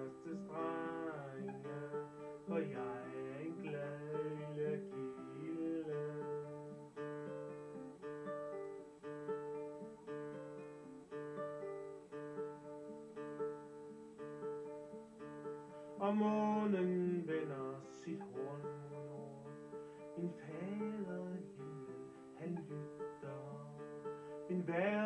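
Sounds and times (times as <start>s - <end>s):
man singing: 0.0s - 7.4s, 16.0s - 25.0s
fingerpicked classical guitar: 0.0s - 25.0s.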